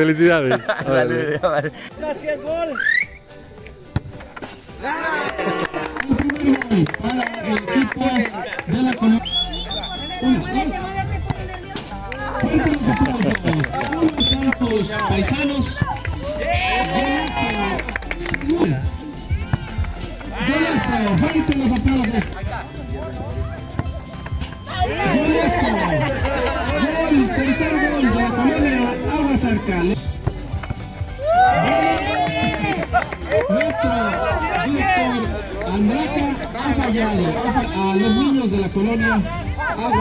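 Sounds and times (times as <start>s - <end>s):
faint background music: 0.0s - 40.0s
people shouting: 15.5s - 17.8s, 31.2s - 35.2s.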